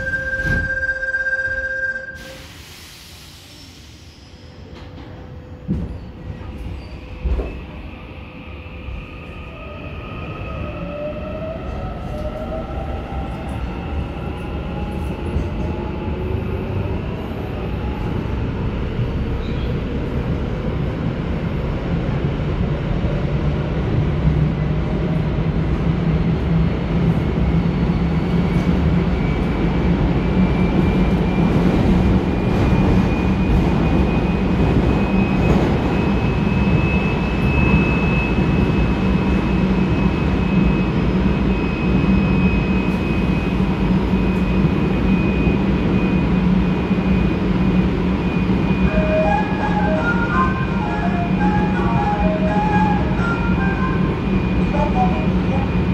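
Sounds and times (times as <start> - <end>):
rumble of train wheels: 0.0 - 55.9.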